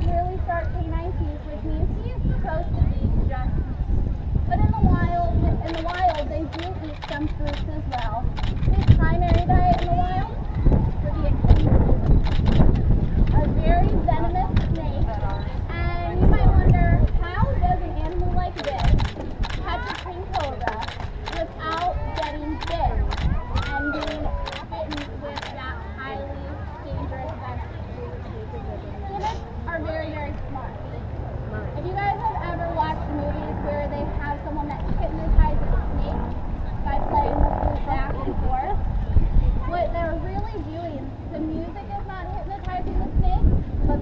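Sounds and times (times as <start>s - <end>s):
woman talking: 0.0s - 3.6s, 4.5s - 10.4s, 13.3s - 38.8s, 39.7s - 44.0s
steady low rumble: 0.0s - 44.0s
wind buffeting microphone: 0.0s - 44.0s.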